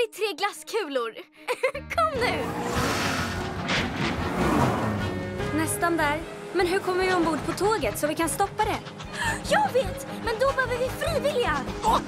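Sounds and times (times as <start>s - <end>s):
rushing vehicle sound effect: 2.4s - 5.7s
train whooshing past: 2.4s - 11.0s.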